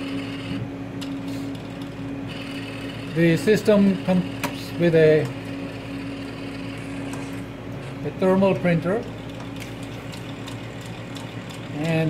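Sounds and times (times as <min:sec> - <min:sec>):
electrical hum of lab instrument: 0:00.0 - 0:12.0.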